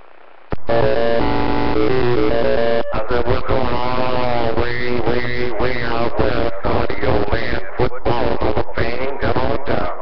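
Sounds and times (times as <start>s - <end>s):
electronic tones through radio speaker: 0.5s - 10.0s.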